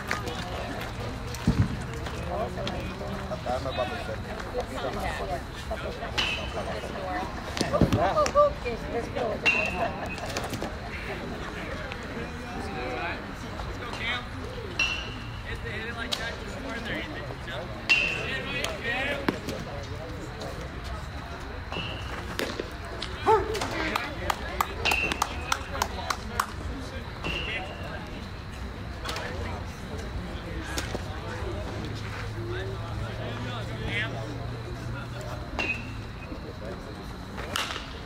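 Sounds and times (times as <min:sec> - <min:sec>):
players and spectators calling out: 0:00.0 - 0:38.0
bat cracking baseball: 0:21.8 - 0:24.0, 0:37.4 - 0:38.0.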